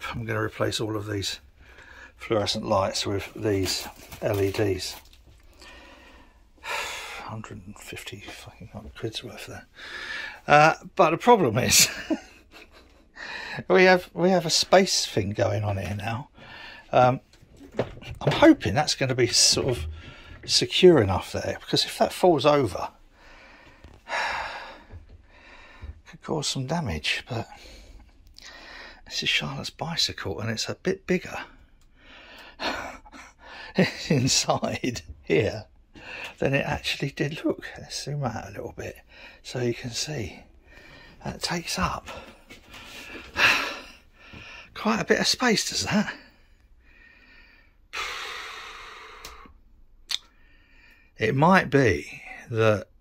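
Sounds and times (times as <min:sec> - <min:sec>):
faint breath: 0:01.6 - 0:02.2, 0:05.4 - 0:07.2, 0:09.7 - 0:10.4, 0:13.2 - 0:13.6, 0:16.4 - 0:16.9, 0:19.8 - 0:20.5, 0:23.1 - 0:26.0, 0:27.5 - 0:29.0, 0:40.6 - 0:41.2, 0:46.2 - 0:49.6, 0:50.3 - 0:51.2
man breathing out: 0:46.8 - 0:49.6.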